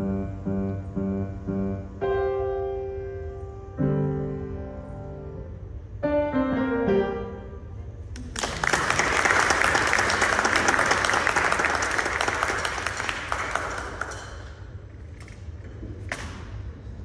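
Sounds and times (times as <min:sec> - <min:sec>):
audience applauding: 0:08.2 - 0:14.6.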